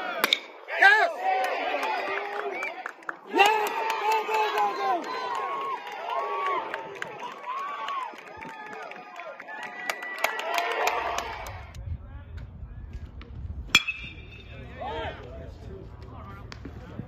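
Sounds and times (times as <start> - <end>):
voices of spectators and players: 0.0 - 17.0
metal bat hitting ball: 0.2 - 0.6, 13.7 - 14.6.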